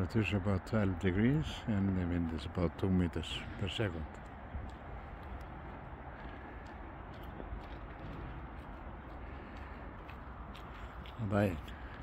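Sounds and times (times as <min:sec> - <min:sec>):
steady low rumble: 0:00.0 - 0:12.0
faint scattered clicks: 0:04.1 - 0:08.0.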